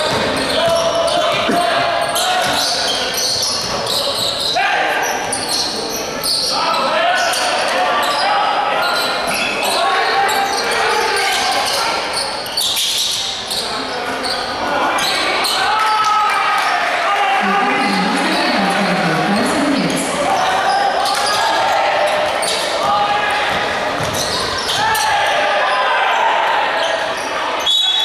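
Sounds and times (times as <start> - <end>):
basketball bouncing on floor: 23.5 - 24.3.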